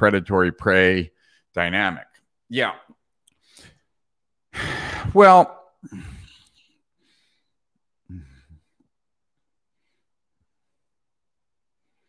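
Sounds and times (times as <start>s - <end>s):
faint breath: 3.4s - 3.9s, 4.5s - 5.1s, 5.9s - 8.8s
man sighing: 4.5s - 6.6s, 8.0s - 8.8s.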